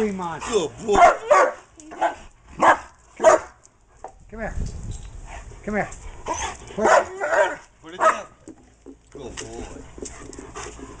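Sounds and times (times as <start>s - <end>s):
dog panting: 8.4s - 11.0s.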